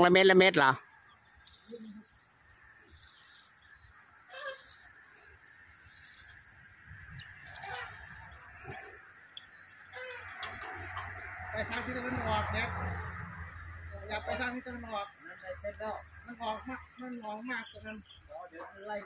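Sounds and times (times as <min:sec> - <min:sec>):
farm fowl honking: 0:07.5 - 0:11.0.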